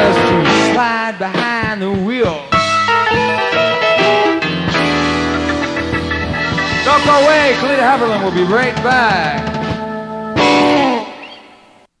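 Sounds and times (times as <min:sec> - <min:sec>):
electric guitar chords: 0:00.0 - 0:11.7.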